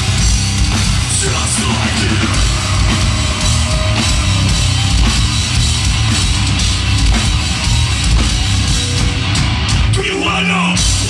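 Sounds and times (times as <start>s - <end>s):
electric guitar: 0.0s - 10.0s
drum kit: 0.0s - 11.0s.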